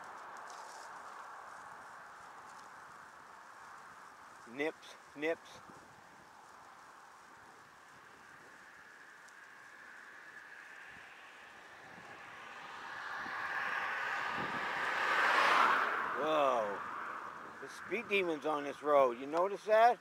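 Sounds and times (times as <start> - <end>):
faint wind: 0.0 - 20.0
road noise: 0.0 - 20.0
car passing fast: 8.3 - 17.8.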